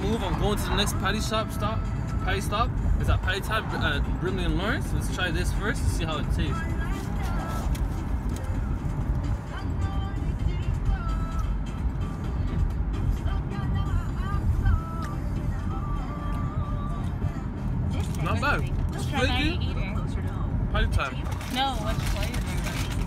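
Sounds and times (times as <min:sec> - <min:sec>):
car cabin rumble: 0:00.0 - 0:23.0
music playing in car: 0:00.0 - 0:23.0.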